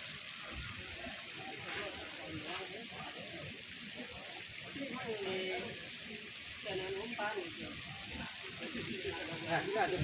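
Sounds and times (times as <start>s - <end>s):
steady hiss: 0.0s - 10.0s
people talking: 0.4s - 10.0s.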